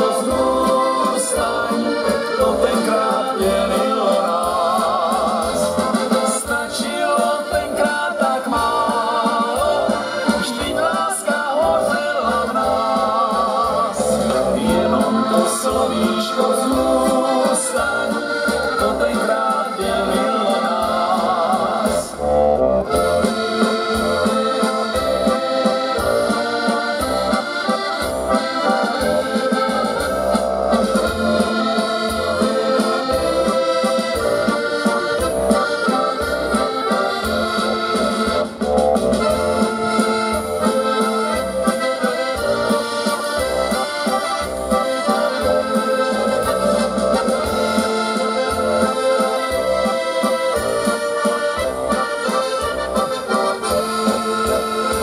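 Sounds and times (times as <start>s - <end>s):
accordions playing: 0.0s - 55.0s
steady bass beat: 7.6s - 25.4s, 28.0s - 49.9s
electronic keyboard: 13.8s - 55.0s.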